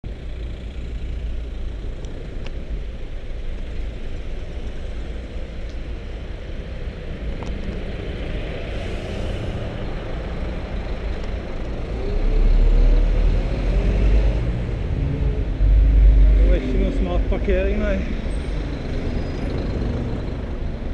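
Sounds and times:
city traffic: 0:00.0 - 0:20.9
road rumble: 0:00.0 - 0:20.9.

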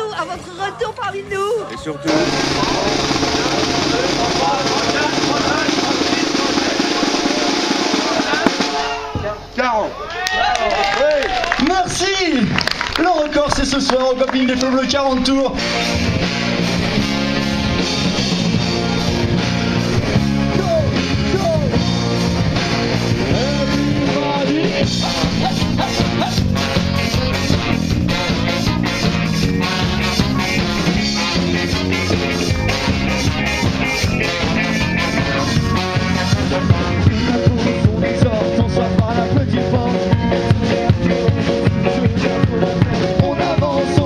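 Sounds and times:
snare drum roll: 0:02.1 - 0:09.0
trombone: 0:02.1 - 0:09.1, 0:15.5 - 0:44.0
bass guitar: 0:02.1 - 0:10.2, 0:13.6 - 0:44.0
many voices shouting: 0:02.1 - 0:11.6
electric guitar: 0:15.5 - 0:44.0
saxophone: 0:24.9 - 0:37.4.

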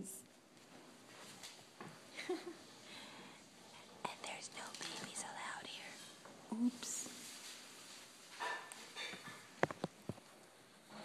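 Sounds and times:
whispery vocal sounds: 0:03.7 - 0:07.2.

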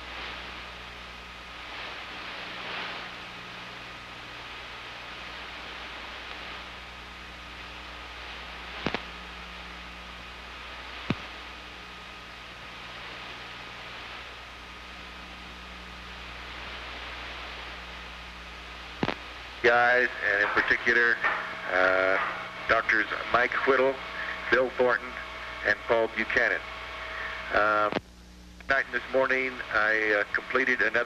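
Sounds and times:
tape hiss and low hum: 0:00.0 - 0:31.0.

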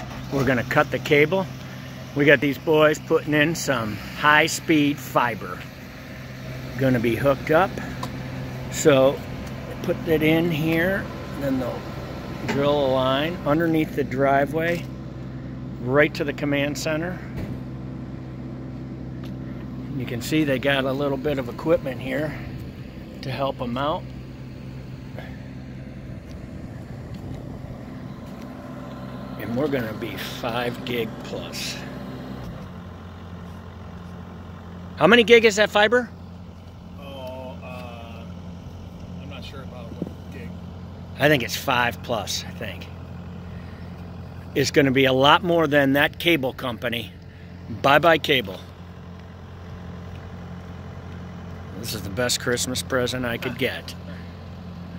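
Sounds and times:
heavy engine idling: 0:00.0 - 0:54.9.

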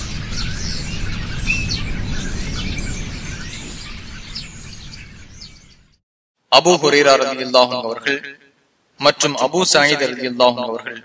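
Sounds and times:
birds chirping: 0:00.0 - 0:06.0
steady background hiss: 0:06.4 - 0:11.0.

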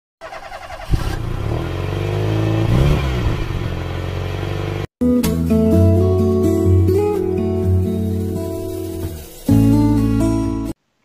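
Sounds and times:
vehicle engine passing by: 0:00.8 - 0:04.9
strummed acoustic guitar music: 0:05.0 - 0:10.8.

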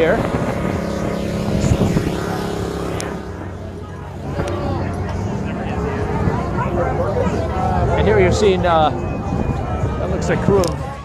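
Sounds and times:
engine hum: 0:00.0 - 0:11.0
people's voices: 0:00.0 - 0:11.0.

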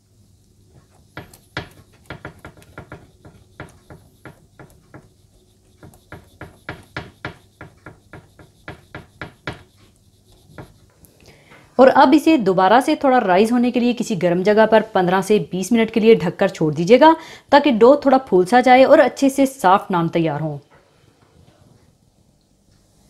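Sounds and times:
fingertips tapping soft dough: 0:00.7 - 0:10.9.

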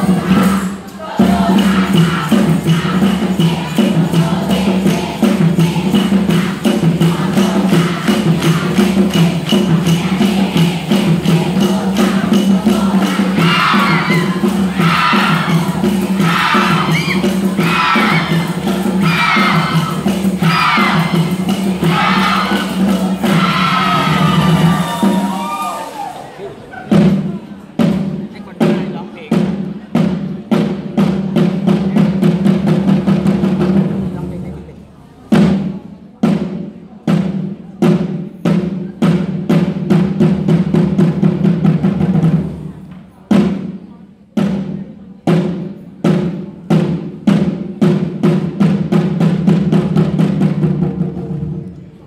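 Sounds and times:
group of voices shouting chant: 0:00.0 - 0:03.8, 0:12.1 - 0:26.4
fast drumming: 0:00.0 - 0:26.2, 0:45.3 - 0:51.8
cheer music with percussion beat: 0:00.0 - 0:34.6, 0:35.3 - 0:52.0.

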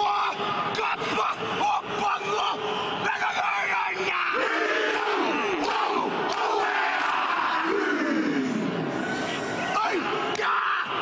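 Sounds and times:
men shouting in unison: 0:00.0 - 0:08.8
large stadium crowd: 0:00.0 - 0:11.0.

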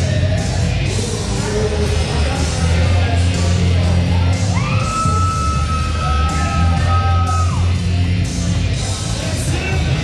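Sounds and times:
live music with bass line: 0:00.0 - 0:10.0.

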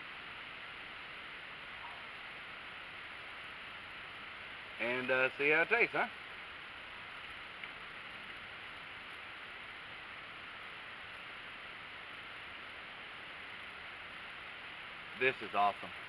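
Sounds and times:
faint outdoor hiss: 0:00.0 - 0:16.0.

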